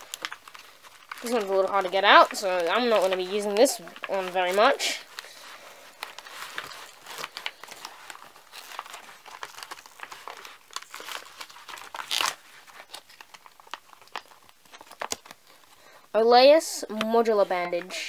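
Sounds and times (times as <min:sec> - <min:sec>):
plastic packaging crinkling: 0:00.0 - 0:16.1.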